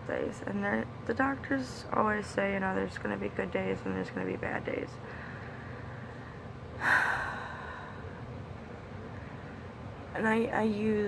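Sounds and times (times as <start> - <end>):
faint room hum: 0.0 - 11.0
woman taking heavy breath: 5.0 - 8.2.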